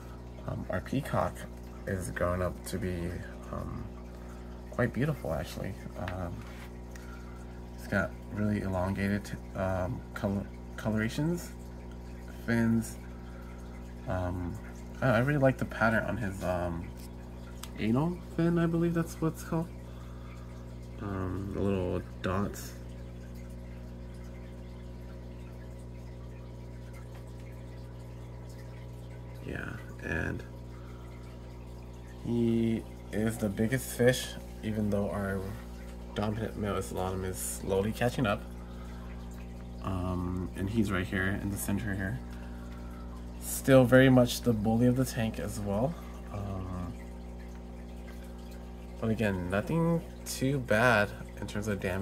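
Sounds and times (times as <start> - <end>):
aquarium pump humming: 0.0 - 52.0
water bubbling: 0.0 - 52.0.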